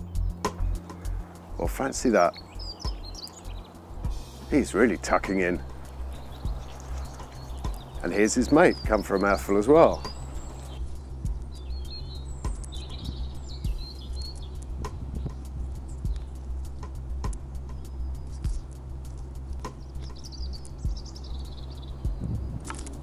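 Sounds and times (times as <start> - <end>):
small birds chirping: 0.0 - 23.0
steady low hum: 2.3 - 8.1, 10.0 - 23.0
crow pecking on concrete: 2.4 - 8.1, 10.0 - 23.0.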